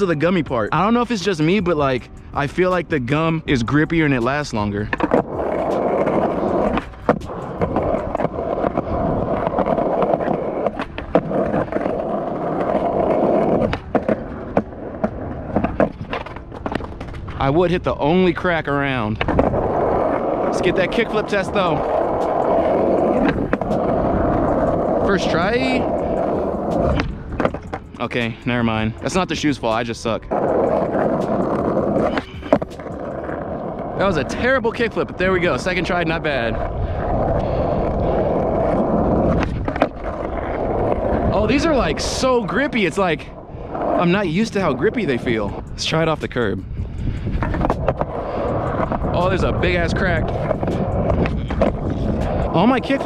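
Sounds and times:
skateboard wheels rolling on asphalt: 0:00.0 - 0:53.0.

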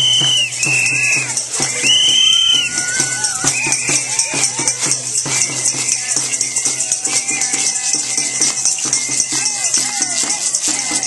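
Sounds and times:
plastic shakers rattling: 0:00.0 - 0:11.0.

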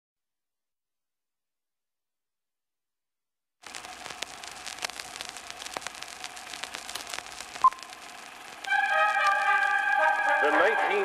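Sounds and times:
film crackling hiss: 0:03.6 - 0:11.0.

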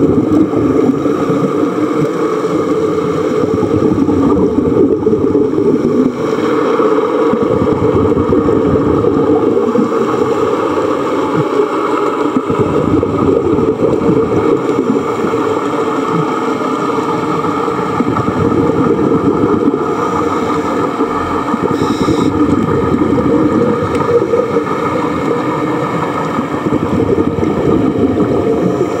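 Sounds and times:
underwater rushing noise: 0:00.0 - 0:29.0.

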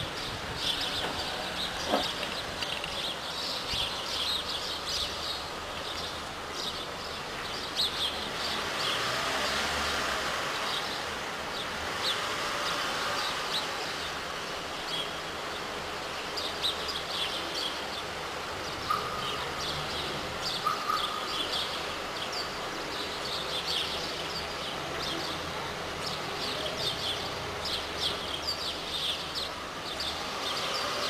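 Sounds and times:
small birds chirping: 0:00.0 - 0:09.6, 0:10.5 - 0:31.0.

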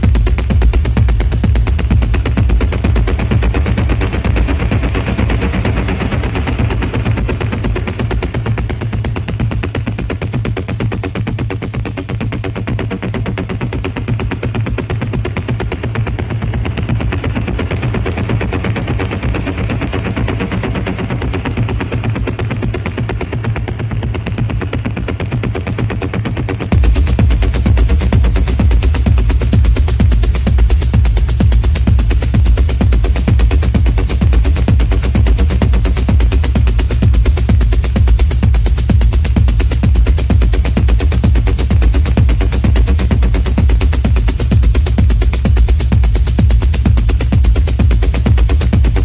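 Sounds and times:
dark techno music: 0:00.0 - 0:49.0
heavy bass: 0:00.0 - 0:49.0
rapid percussive pattern: 0:00.0 - 0:49.0.

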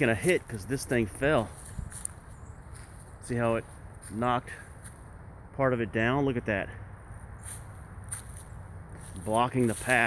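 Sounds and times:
footsteps in dry leaves: 0:00.0 - 0:05.2, 0:07.1 - 0:10.0.

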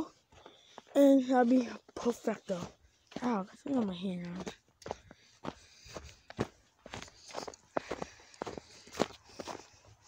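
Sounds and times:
footsteps crunching through snow: 0:00.0 - 0:10.0.

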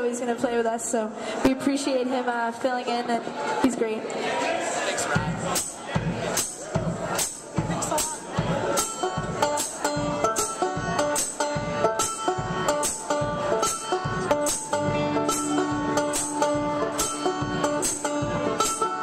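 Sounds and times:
fast banjo picking: 0:05.0 - 0:19.0
steady percussive beat: 0:05.0 - 0:19.0
acoustic and electric guitars: 0:07.9 - 0:19.0.

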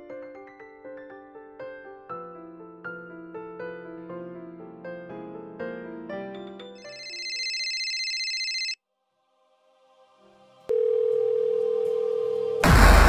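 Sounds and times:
piano music: 0:00.0 - 0:07.5
low telephone dial tone: 0:06.9 - 0:08.8, 0:10.7 - 0:12.6.

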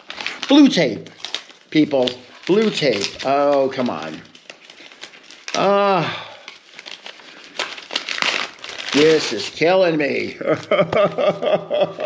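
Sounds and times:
paper envelope crinkling: 0:00.0 - 0:12.0.

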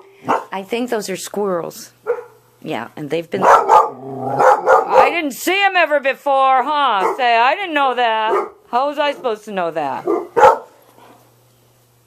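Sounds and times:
dog barking: 0:00.2 - 0:00.5, 0:02.0 - 0:02.4, 0:03.4 - 0:05.2, 0:07.0 - 0:07.3, 0:08.2 - 0:08.6, 0:10.0 - 0:10.8.

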